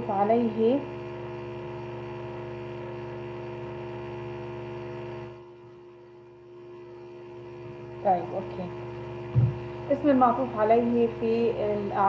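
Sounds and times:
electrical hum with buzz: 0:00.0 - 0:12.0.

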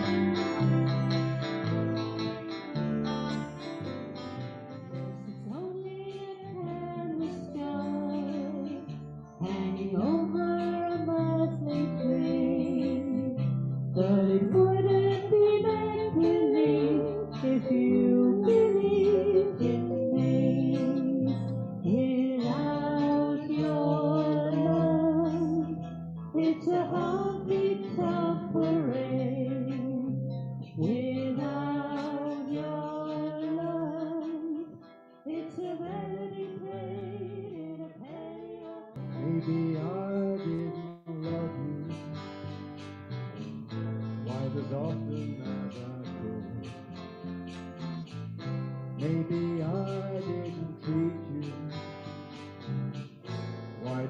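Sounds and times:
strummed acoustic guitars: 0:00.0 - 0:54.0
woman singing: 0:05.3 - 0:30.2, 0:30.8 - 0:41.8
people singing long notes: 0:14.0 - 0:25.8.

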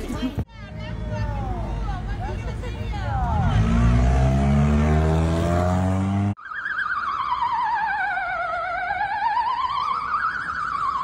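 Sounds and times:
car engine revving: 0:00.8 - 0:06.4
ambulance siren warbling: 0:03.4 - 0:11.0.

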